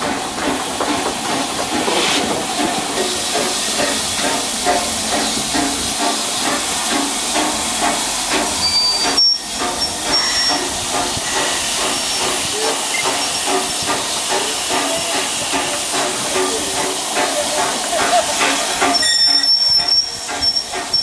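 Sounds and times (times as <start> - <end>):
steam hissing from locomotive: 0.0 - 21.0.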